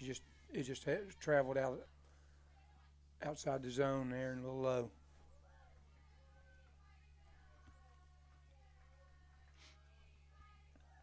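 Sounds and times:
faint far-off voices: 0.0 - 11.0.

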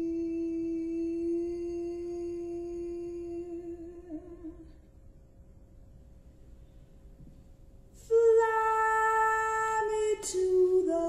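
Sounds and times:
woman singing a long note: 0.0 - 4.8, 8.0 - 11.0.

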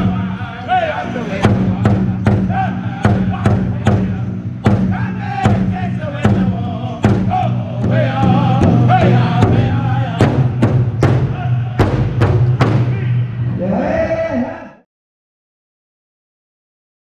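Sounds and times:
large hide drum beat: 0.0 - 0.7, 1.3 - 13.5
group singing in high voices: 0.0 - 14.4.

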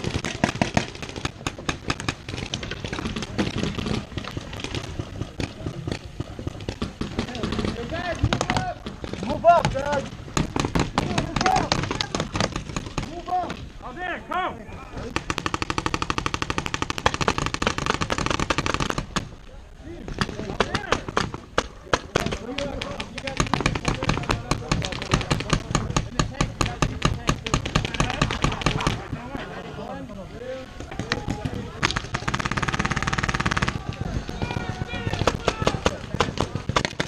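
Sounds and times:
paintball markers firing: 0.0 - 13.7, 15.0 - 19.4, 20.1 - 29.3, 30.7 - 37.0
people shouting: 11.0 - 12.4, 30.7 - 36.4.

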